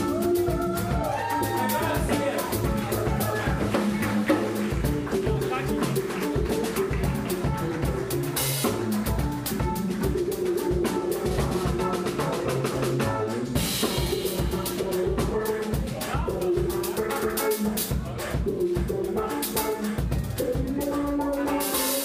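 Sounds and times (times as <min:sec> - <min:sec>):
drum kit beat: 0:00.0 - 0:22.0
electric guitar: 0:00.0 - 0:22.0
keyboard: 0:00.0 - 0:22.0
upright bass: 0:00.0 - 0:22.0.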